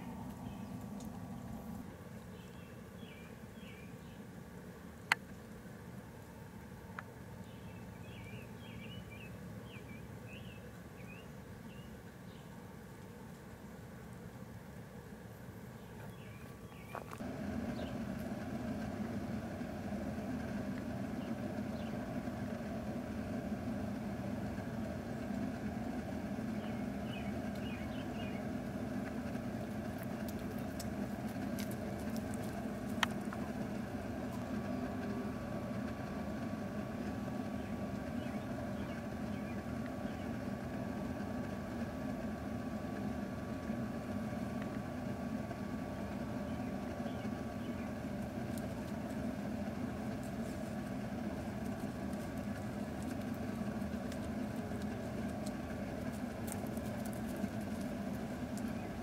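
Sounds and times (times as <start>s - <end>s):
mechanical motor drone: 17.0s - 59.0s.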